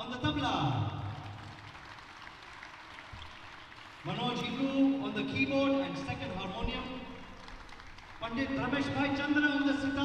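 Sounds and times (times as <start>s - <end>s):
audience applause in a hall: 0.4s - 10.0s.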